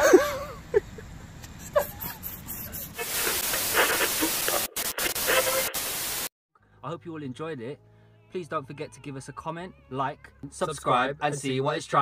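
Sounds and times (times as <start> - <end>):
loud steady hiss: 2.9 - 6.3.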